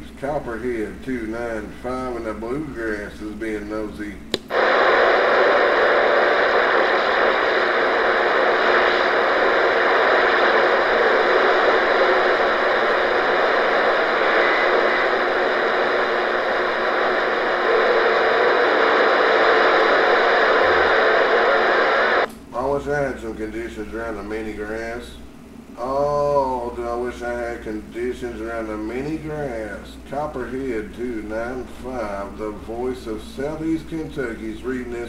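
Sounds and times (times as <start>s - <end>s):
radio static hiss: 0.0s - 35.0s.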